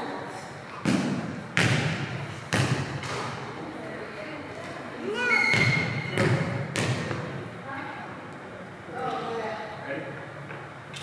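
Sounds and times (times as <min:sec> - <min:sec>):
volleyball smacks with echo: 0:00.8 - 0:03.5, 0:05.5 - 0:07.3.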